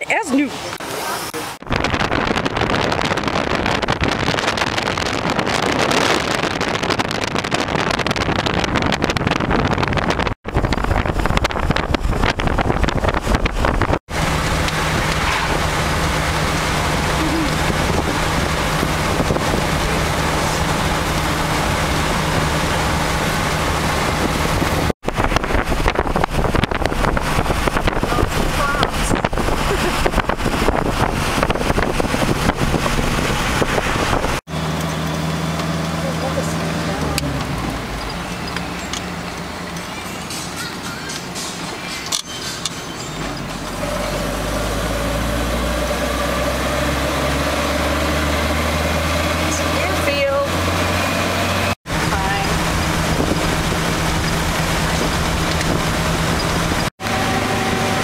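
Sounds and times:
car engine hum: 0.0 - 58.0
road noise: 0.0 - 58.0
wind noise: 0.1 - 58.0.

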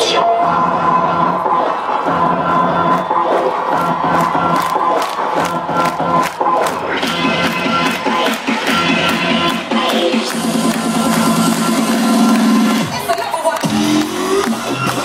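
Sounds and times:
electronic dance music: 0.0 - 15.0
steady beat: 0.9 - 15.0
crowd cheering: 1.5 - 15.0.

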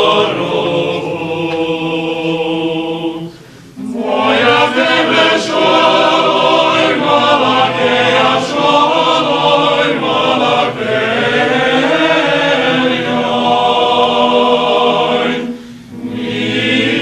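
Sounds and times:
male choir singing chords: 0.0 - 17.0.

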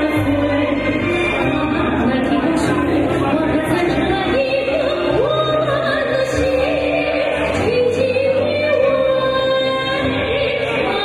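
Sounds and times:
instrumental backing music: 0.0 - 11.0
woman singing into microphone: 0.0 - 11.0.

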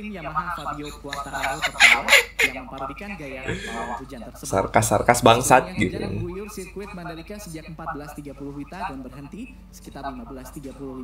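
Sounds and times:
man laughing loudly: 0.7 - 4.0.

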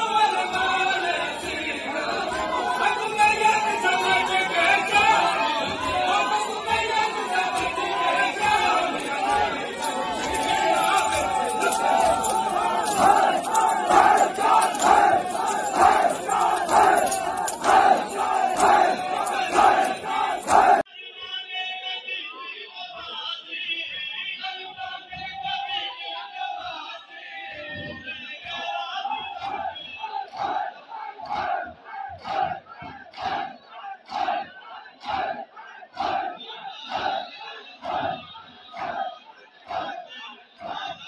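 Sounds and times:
rhythmic chest-beating: 0.0 - 20.8
crowd chanting in unison: 0.0 - 20.9, 21.5 - 41.0
crowd voices: 0.0 - 41.0.

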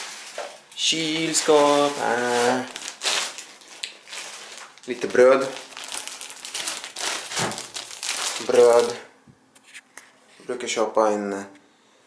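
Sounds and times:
plastic bag crinkling: 0.0 - 9.1.

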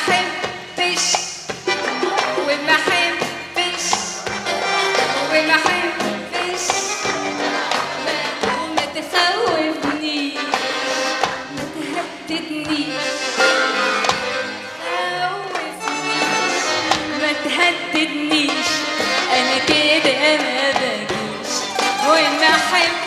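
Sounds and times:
percussion strikes: 0.0 - 14.8, 15.5 - 23.0
band playing pop music: 0.0 - 23.0
woman singing: 0.0 - 23.0.

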